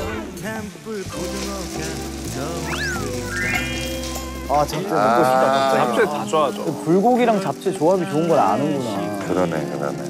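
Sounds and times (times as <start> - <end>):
background music with bass line: 0.0 - 5.6
rising whistle effect: 2.7 - 4.4
rising chime-like tones: 2.7 - 4.7.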